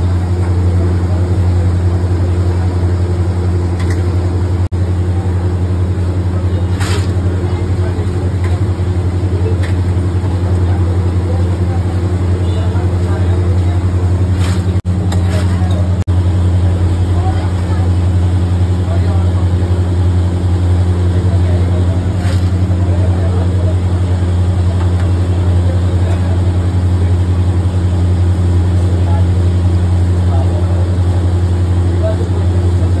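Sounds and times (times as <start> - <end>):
low mechanical fan hum: 0.0 - 33.0.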